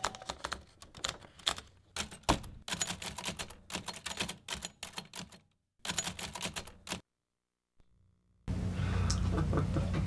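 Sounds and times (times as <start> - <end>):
manual typewriter keys clacking: 0.0 - 7.0.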